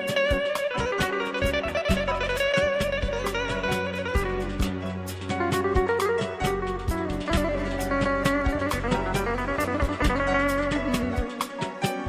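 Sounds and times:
bass: 0:00.0 - 0:12.0
drum beat: 0:00.0 - 0:12.0
electric guitar melody: 0:00.0 - 0:12.0.

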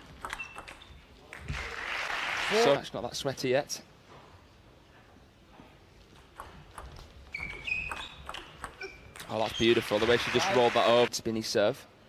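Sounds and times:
table tennis ball clicking: 0:00.2 - 0:00.8, 0:06.2 - 0:09.3
crowd applause: 0:01.6 - 0:02.7, 0:09.9 - 0:11.1.

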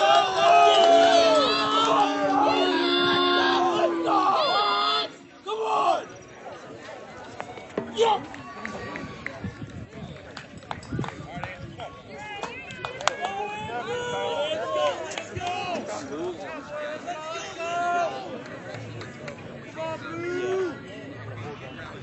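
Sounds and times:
people chattering: 0:00.0 - 0:22.0.

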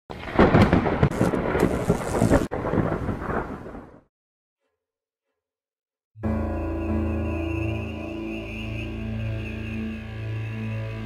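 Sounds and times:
loud rumbling noise with crackles: 0:00.1 - 0:04.1.

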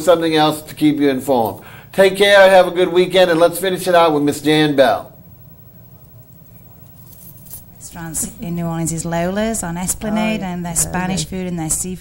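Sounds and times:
steady low hum: 0:00.0 - 0:12.0
faint clinks: 0:05.7 - 0:08.6.

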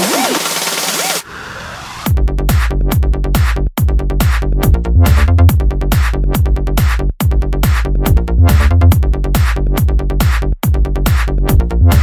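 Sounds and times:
synth line swooping: 0:00.0 - 0:02.1.

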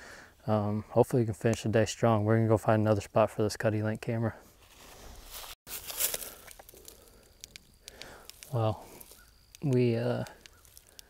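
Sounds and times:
handling noise rustling: 0:04.5 - 0:07.6
light clicks: 0:07.4 - 0:11.0.

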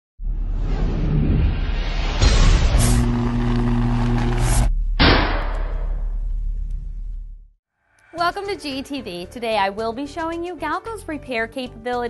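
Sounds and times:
low rumbling whoosh: 0:00.2 - 0:07.5.

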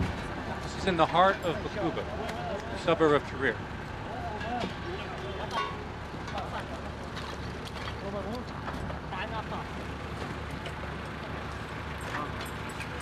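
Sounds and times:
traffic engines rumbling: 0:00.0 - 0:13.0
voices talking: 0:00.4 - 0:13.0.

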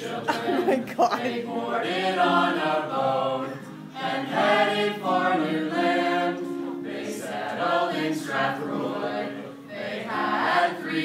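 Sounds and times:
acoustic guitar strumming: 0:00.0 - 0:10.8
group singing together: 0:00.0 - 0:11.0.

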